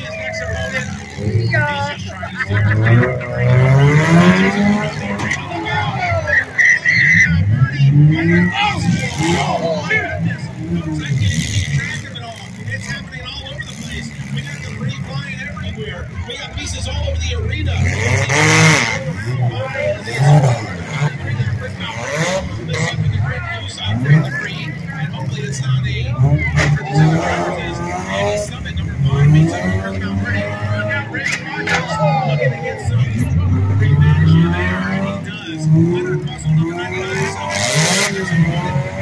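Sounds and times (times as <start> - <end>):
car engines revving: 0.0 - 39.0
crowd voices: 0.0 - 39.0.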